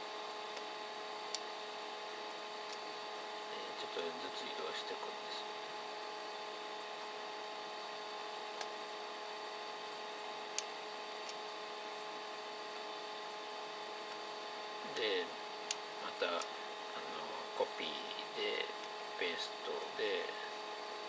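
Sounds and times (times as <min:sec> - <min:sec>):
electrical whine: 0:00.0 - 0:21.0.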